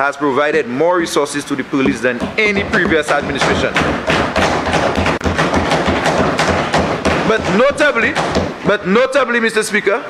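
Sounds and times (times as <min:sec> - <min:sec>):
hands banging on desks: 0:01.8 - 0:08.8.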